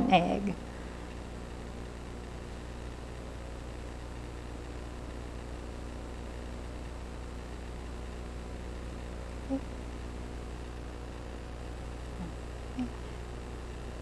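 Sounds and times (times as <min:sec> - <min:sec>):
mains hum: 0:00.0 - 0:14.0
room tone hiss: 0:00.0 - 0:14.0.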